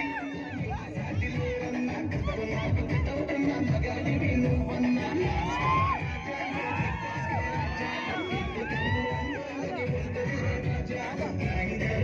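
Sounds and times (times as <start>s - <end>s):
crowd shouting: 0.0s - 11.8s
loud music with heavy beat: 0.0s - 12.0s.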